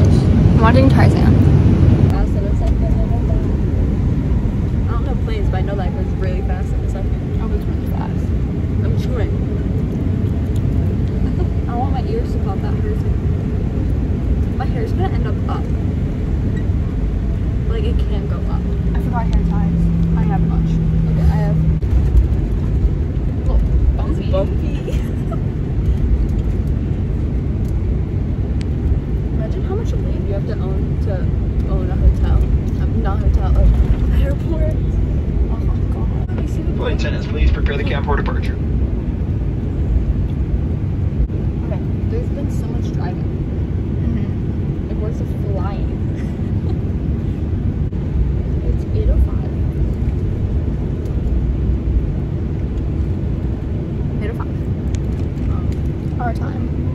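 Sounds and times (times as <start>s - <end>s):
airliner engines rumbling: 0.0s - 56.9s
low steady hum: 0.0s - 56.9s
faint voices: 29.4s - 38.6s.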